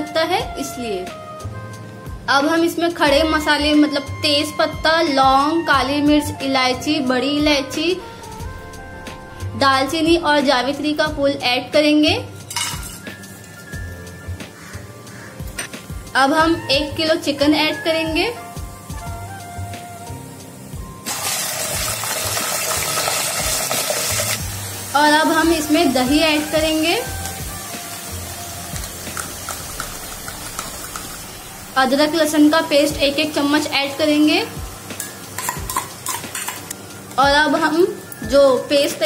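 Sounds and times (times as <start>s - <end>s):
chicken sizzling in hot oil: 20.0s - 38.8s
spoon scraping a steel bowl: 35.0s - 36.7s.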